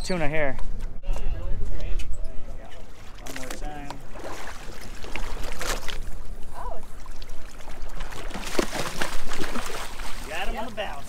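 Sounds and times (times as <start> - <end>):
water splashing and sloshing: 2.5 - 11.0.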